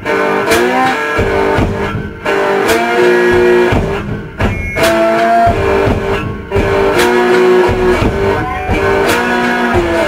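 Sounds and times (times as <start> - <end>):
blues guitar: 0.0 - 10.0
strummed guitar chord: 4.5 - 10.0.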